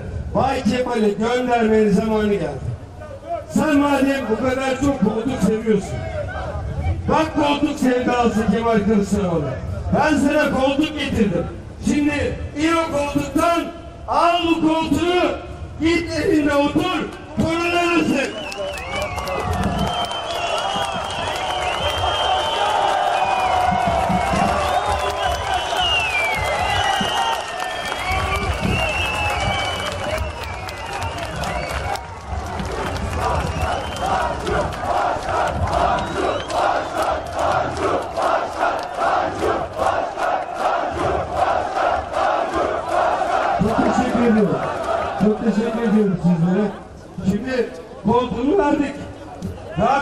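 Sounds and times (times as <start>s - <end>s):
crowd shouting and cheering: 17.3s - 50.0s
crowd chanting: 32.6s - 45.4s.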